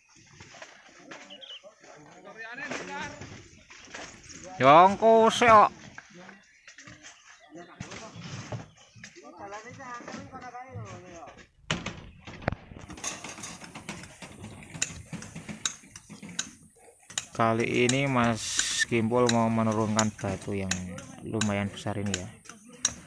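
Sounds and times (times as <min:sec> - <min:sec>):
hand tool striking rock: 0:14.8 - 0:23.0.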